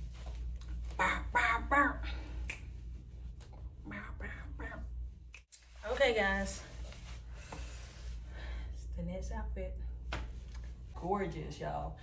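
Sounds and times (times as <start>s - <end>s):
steady low hum: 0.0s - 12.0s
woman making wordless sounds: 0.9s - 2.6s, 3.7s - 5.4s.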